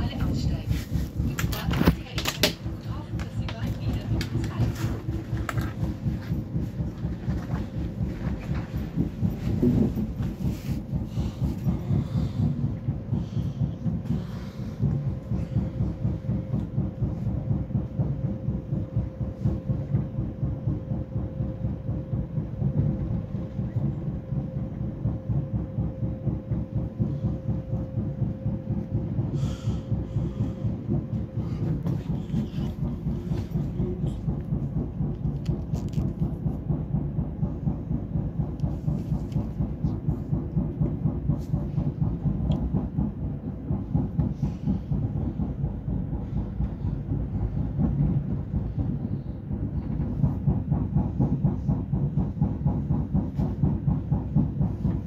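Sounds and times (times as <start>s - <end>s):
train wheels clattering: 0.0s - 20.2s, 26.3s - 55.0s
faint steady whine: 0.0s - 55.0s
train rumble: 0.0s - 55.0s.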